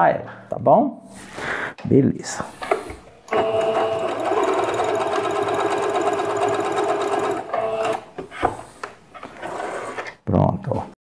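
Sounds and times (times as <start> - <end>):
sewing machine running: 3.3 - 8.1.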